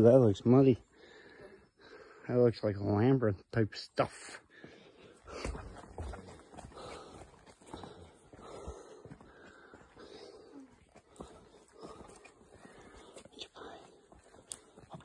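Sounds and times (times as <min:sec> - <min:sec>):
footsteps on dirt trail: 0:04.5 - 0:15.0.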